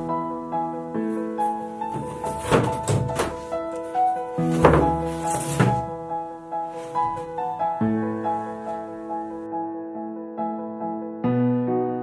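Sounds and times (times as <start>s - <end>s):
gentle piano music: 0.0s - 12.0s
foam boards knocking on tabletop: 4.5s - 5.9s.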